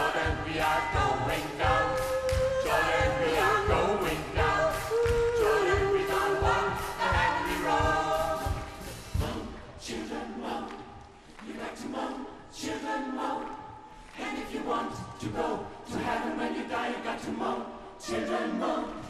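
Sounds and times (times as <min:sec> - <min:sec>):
steady low beat: 0:00.0 - 0:09.8
gospel choir singing: 0:00.0 - 0:19.0.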